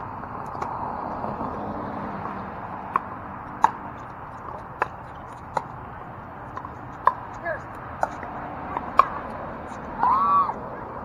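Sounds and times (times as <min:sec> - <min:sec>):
paddle hitting ball: 0:02.2 - 0:10.6.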